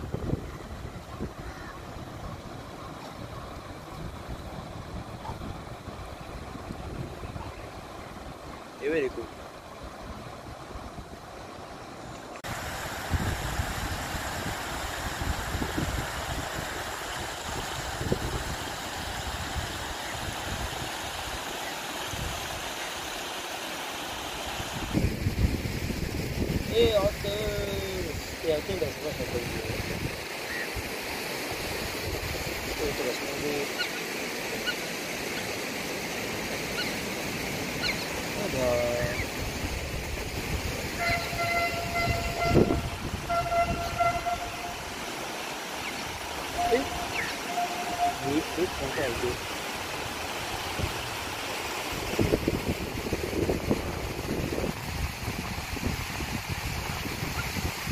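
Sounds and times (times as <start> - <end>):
wind buffeting microphone: 0.0 - 8.6, 12.4 - 20.8, 24.7 - 30.2, 38.4 - 45.0, 46.1 - 57.9
water rushing over rocks: 0.0 - 57.9
train horn: 41.0 - 45.0, 46.6 - 48.8
faint bird chirps: 46.6 - 48.3.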